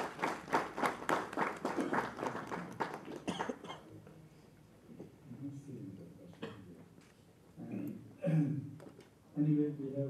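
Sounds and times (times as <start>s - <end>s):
audience applauding: 0.0s - 3.7s.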